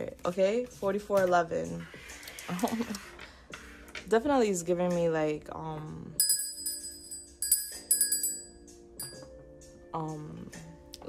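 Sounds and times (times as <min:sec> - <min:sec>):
small hand bell ringing: 0:06.2 - 0:09.3.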